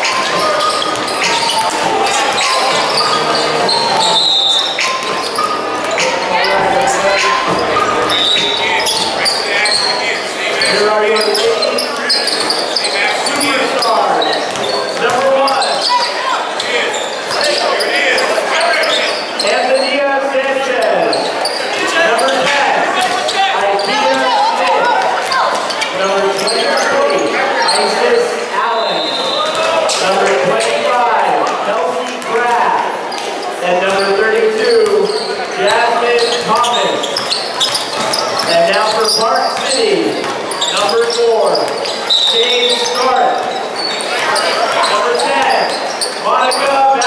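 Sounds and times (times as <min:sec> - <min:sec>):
chatter and shouts of voices: 0:00.0 - 0:47.0.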